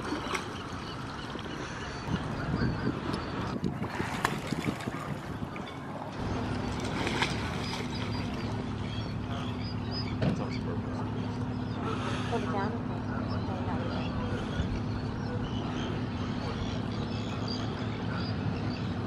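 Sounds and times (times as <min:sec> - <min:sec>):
low engine hum: 0:00.0 - 0:19.0
waterfront background noise: 0:00.0 - 0:19.0.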